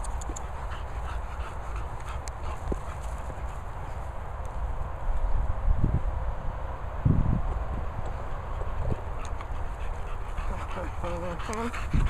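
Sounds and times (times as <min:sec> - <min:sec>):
light ticks: 0:00.0 - 0:00.7, 0:01.9 - 0:03.2, 0:09.2 - 0:09.6
dog paws running on grass: 0:00.0 - 0:05.6.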